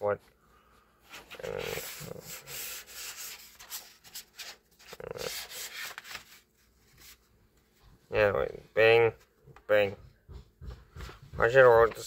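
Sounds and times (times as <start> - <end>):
hand rubbing on paper: 1.1 - 7.3
page turning: 1.1 - 7.3.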